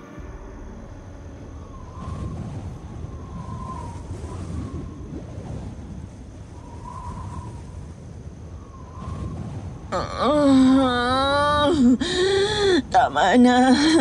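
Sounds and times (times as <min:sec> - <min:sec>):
wavering whistle-like tones: 0:00.0 - 0:11.6
low rough rumble: 0:00.0 - 0:14.0.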